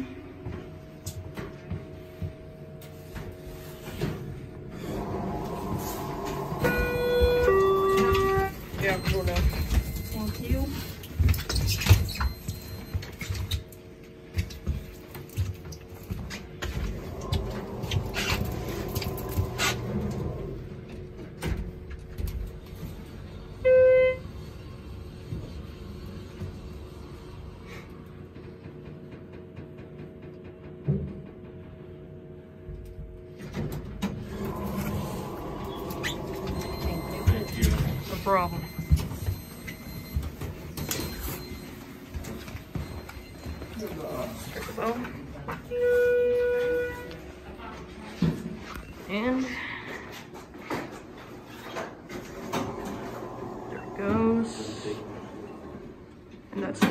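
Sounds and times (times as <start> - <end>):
elevator hum: 0.0 - 56.8.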